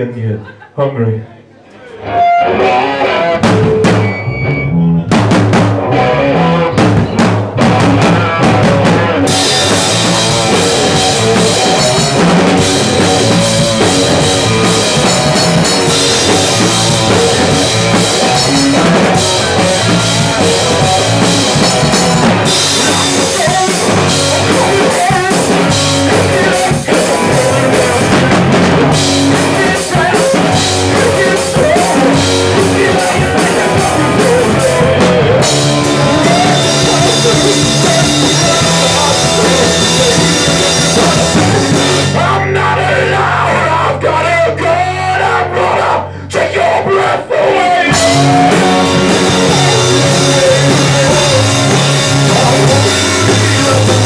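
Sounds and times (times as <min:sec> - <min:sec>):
live rock band playing: 0:02.0 - 0:46.1, 0:47.4 - 0:54.0
drum hits: 0:03.4 - 0:04.1, 0:05.1 - 0:05.9, 0:06.7 - 0:42.8, 0:47.9 - 0:54.0.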